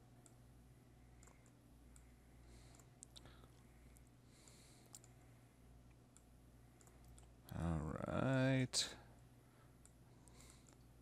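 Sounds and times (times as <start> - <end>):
computer mouse clicks: 1.2 - 2.1, 2.7 - 4.1, 4.8 - 5.2, 6.1 - 7.3, 9.8 - 10.9.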